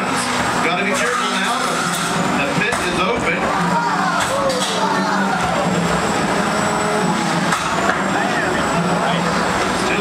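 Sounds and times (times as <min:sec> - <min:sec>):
crowd chatter: 0:00.0 - 0:10.0
electric motors whining: 0:00.0 - 0:10.0.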